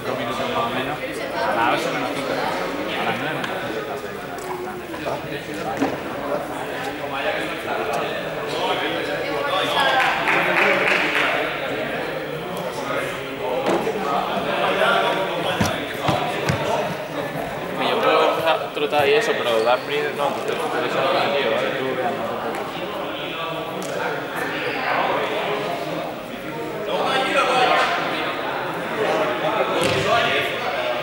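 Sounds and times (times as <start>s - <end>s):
chatter of voices: 0.0s - 31.0s
dull thumps on hall floor: 15.6s - 17.0s.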